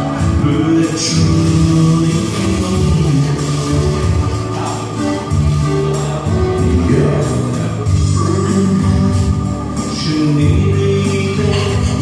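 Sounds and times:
keyboard music: 0.0 - 12.0
man singing into a microphone: 0.0 - 12.0.

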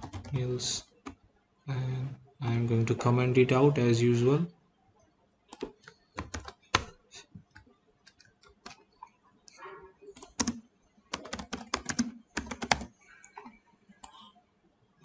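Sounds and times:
computer keyboard typing: 0.0 - 1.2, 5.5 - 8.9, 10.1 - 14.2.

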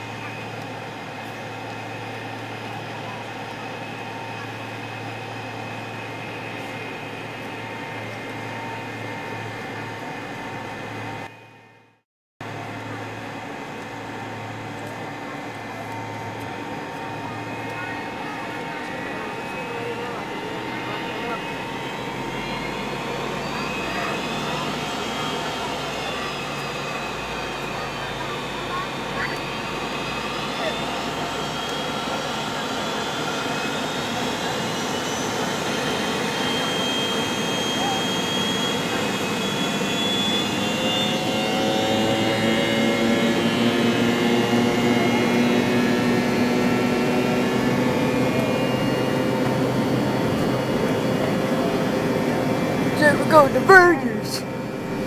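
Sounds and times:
jet engines rumbling and humming: 0.0 - 11.3, 12.4 - 55.0.

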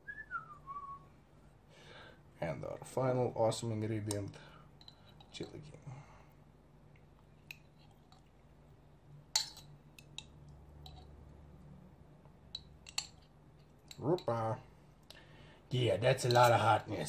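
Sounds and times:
faint steady hum: 0.0 - 17.0
spoon clicking against glass jar: 9.4 - 11.1, 12.5 - 14.3.

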